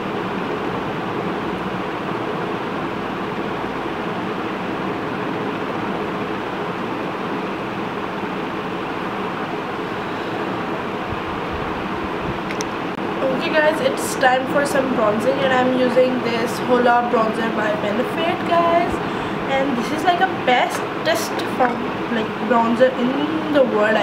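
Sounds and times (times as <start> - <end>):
electric fan whooshing: 0.0 - 24.0
faint hum: 0.0 - 24.0.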